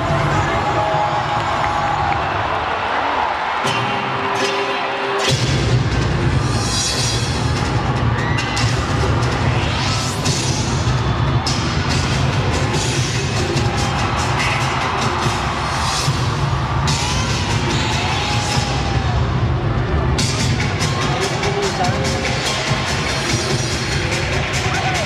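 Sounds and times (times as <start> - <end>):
electronic dance music with heavy beat: 0.0 - 25.0.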